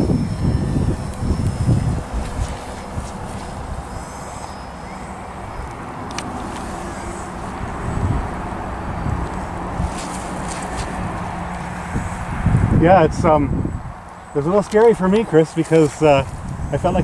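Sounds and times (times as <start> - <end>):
model airplane motor buzzing: 0.0 - 17.0
wind rumbling on microphone: 0.0 - 17.0.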